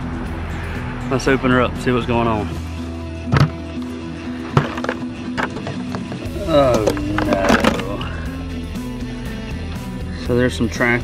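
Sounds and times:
background music: 0:00.0 - 0:11.0
plastic bucket lid knocks: 0:03.3 - 0:03.6.

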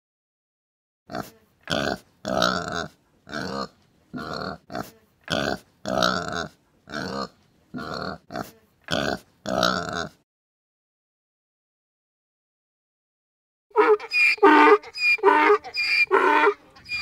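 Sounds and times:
pigs grunting: 0:01.1 - 0:10.2.

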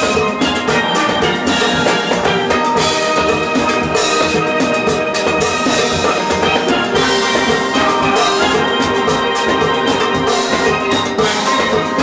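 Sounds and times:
drum kit beat: 0:00.0 - 0:12.0
steel pans playing melody: 0:00.0 - 0:12.0.

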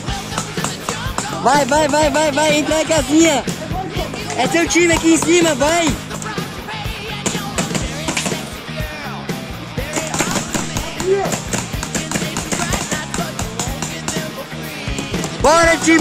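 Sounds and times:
background music: 0:00.0 - 0:16.0
paintball markers firing: 0:07.2 - 0:08.4, 0:09.8 - 0:14.3, 0:15.0 - 0:16.0.

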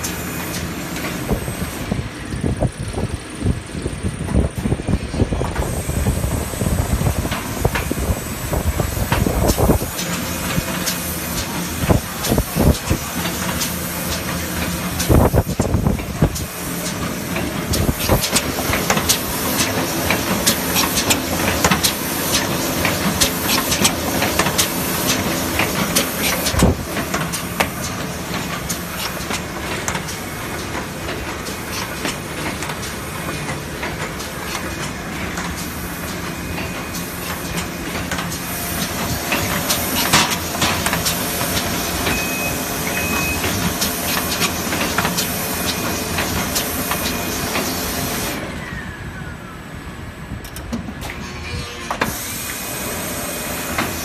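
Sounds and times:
binding machine hum and hiss: 0:00.0 - 0:54.0.

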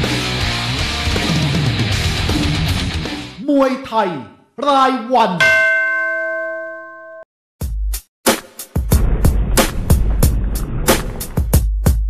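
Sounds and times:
synthesized bell-like chime: 0:05.4 - 0:07.3
deep booming hit with hiss: 0:08.8 - 0:11.9.

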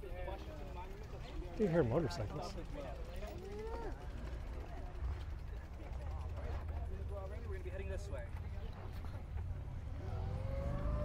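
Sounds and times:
people chattering: 0:00.0 - 0:11.0
motorcycles rumbling: 0:00.1 - 0:11.0.

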